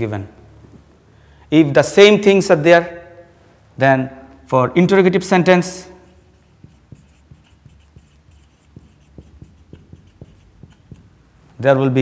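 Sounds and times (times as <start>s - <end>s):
marker pen on whiteboard: 5.4s - 12.0s.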